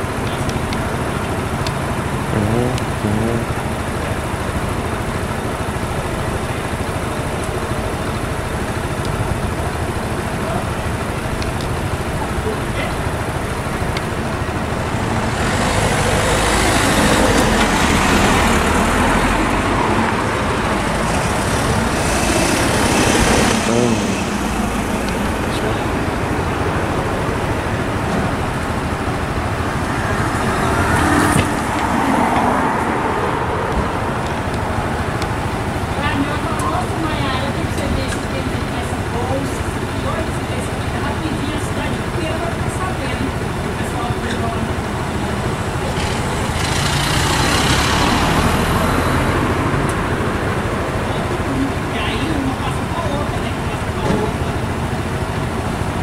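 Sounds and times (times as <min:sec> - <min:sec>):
road traffic noise: 0:00.0 - 0:56.0
train passing: 0:14.3 - 0:37.7.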